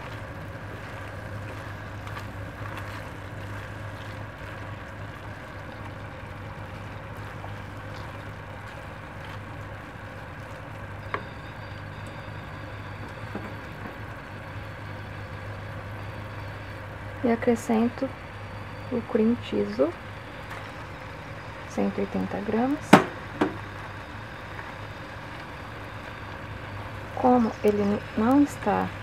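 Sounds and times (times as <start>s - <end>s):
wooden spoon stirring in a pan: 0.0s - 19.2s
low hum: 0.0s - 29.0s.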